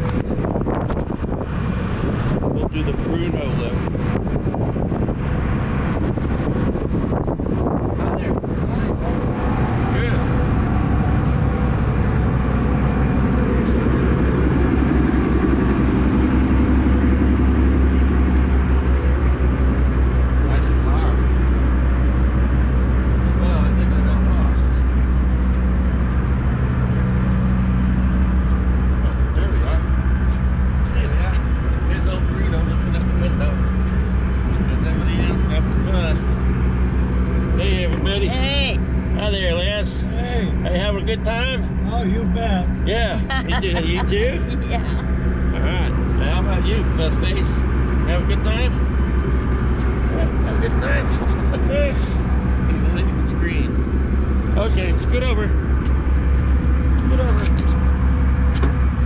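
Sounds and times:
diesel engines droning: 0:00.0 - 0:59.0.

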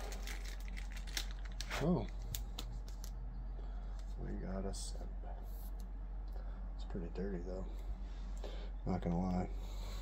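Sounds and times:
trading cards in plastic sleeves rustling: 0:00.0 - 0:03.2
steady low hum: 0:00.0 - 0:10.0.

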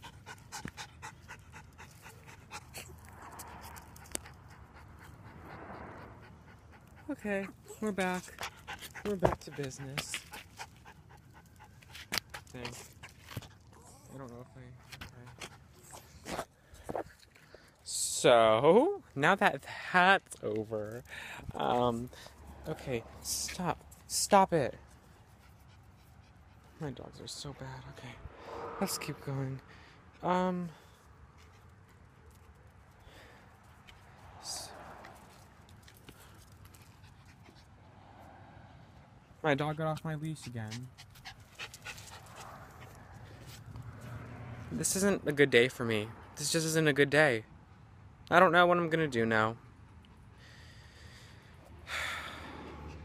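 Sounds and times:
dog panting: 0:00.0 - 0:17.1, 0:24.8 - 0:29.1, 0:34.7 - 0:37.9, 0:39.6 - 0:44.2, 0:52.5 - 0:53.0.

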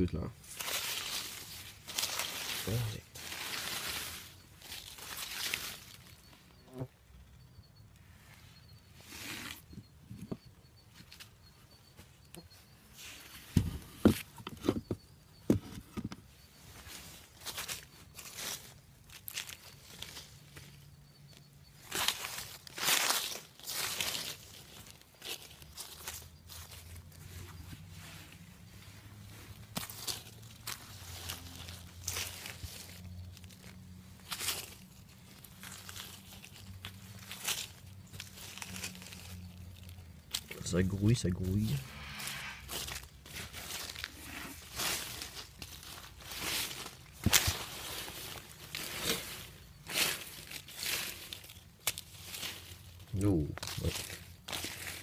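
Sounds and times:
hands rustling through leaves: 0:00.4 - 0:06.4, 0:16.6 - 0:20.8, 0:21.8 - 0:55.0.

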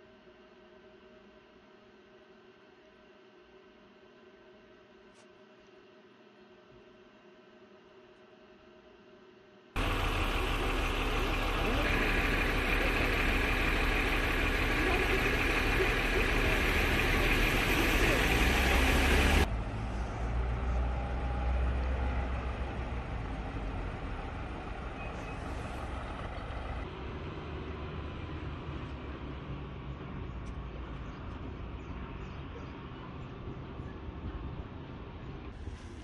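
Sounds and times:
background voices: 0:09.8 - 0:19.5
vehicle rumble: 0:09.8 - 0:36.0.

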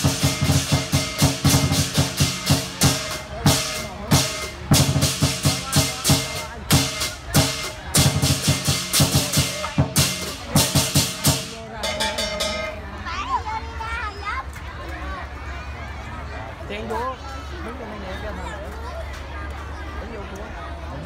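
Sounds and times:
crashing cymbals: 0:00.0 - 0:12.8
big drum beating: 0:00.0 - 0:12.9.

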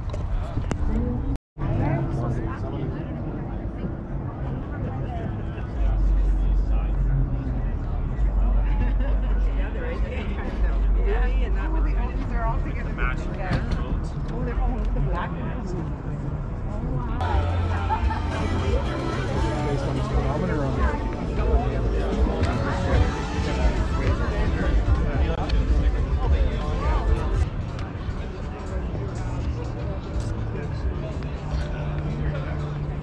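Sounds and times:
people talking: 0:00.0 - 0:33.0.

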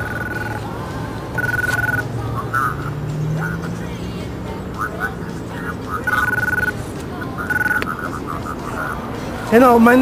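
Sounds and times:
electronic telephone ringing: 0:00.0 - 0:00.7, 0:01.3 - 0:02.8, 0:06.0 - 0:09.0.

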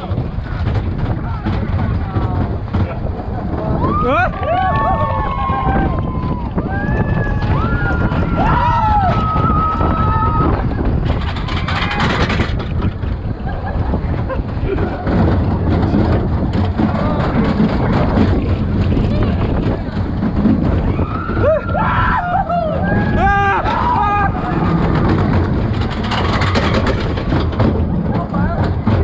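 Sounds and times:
roller coaster rattling on track: 0:00.0 - 0:29.0
wind on microphone: 0:00.0 - 0:29.0
riders yelling: 0:21.0 - 0:24.8.

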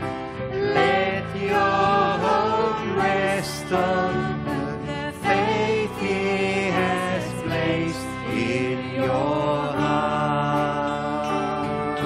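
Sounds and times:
guitar accompaniment: 0:00.0 - 0:12.0
voices singing: 0:00.6 - 0:12.0.

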